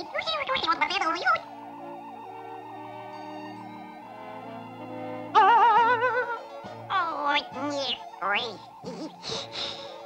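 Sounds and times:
cartoon alien voice babbling: 0:00.0 - 0:01.4, 0:05.3 - 0:09.3
eerie sci-fi music: 0:00.0 - 0:10.0.

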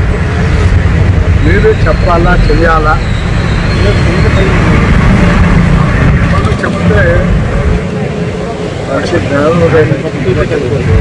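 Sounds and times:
low outdoor rumble: 0:00.0 - 0:11.0
man speaking: 0:03.8 - 0:05.0.

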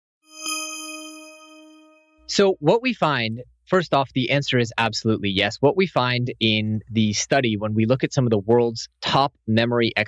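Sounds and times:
bell-like chime: 0:00.2 - 0:02.3.

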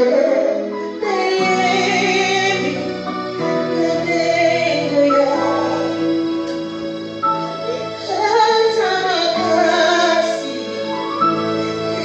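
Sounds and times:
woman singing into microphone: 0:00.0 - 0:06.6, 0:07.7 - 0:12.0.

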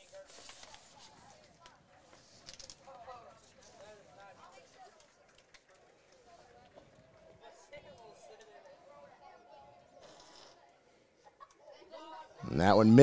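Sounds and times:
distant crowd chattering: 0:00.0 - 0:13.0.

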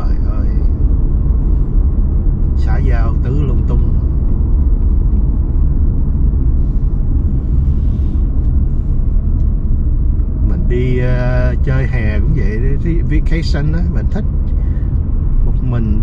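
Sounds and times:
car road and engine rumble: 0:00.0 - 0:16.0
driver vocal sound: 0:10.4 - 0:14.4, 0:15.4 - 0:16.0.

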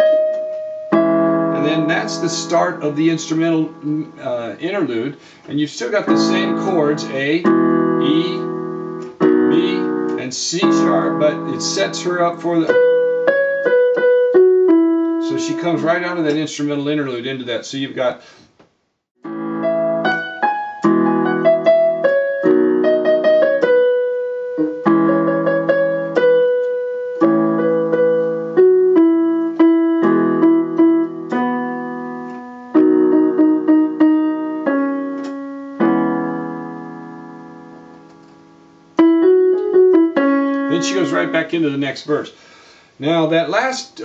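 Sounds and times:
electronic keyboard piano playing: 0:00.0 - 0:16.6, 0:19.2 - 0:42.2.

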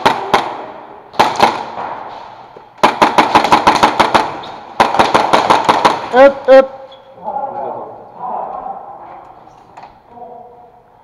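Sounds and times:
airsoft guns firing: 0:00.0 - 0:02.2, 0:02.8 - 0:06.4.

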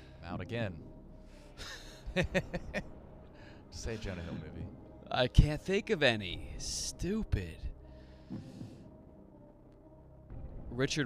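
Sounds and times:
man laughing: 0:01.6 - 0:02.9.

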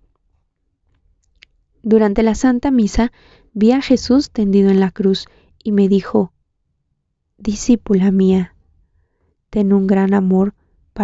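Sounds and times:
woman speaking: 0:01.8 - 0:06.3, 0:07.4 - 0:08.6, 0:09.5 - 0:10.6.

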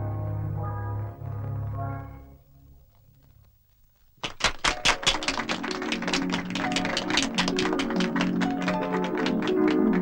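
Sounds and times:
rhythmic hand clapping: 0:04.2 - 0:10.0
orchestral film music: 0:05.4 - 0:10.0.

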